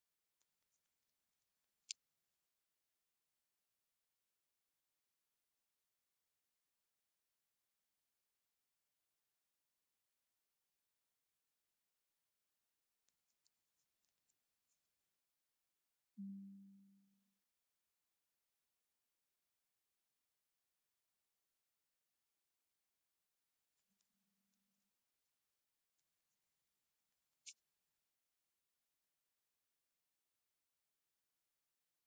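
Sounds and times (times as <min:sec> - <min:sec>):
very high-pitched tone: 0:16.2 - 0:17.2.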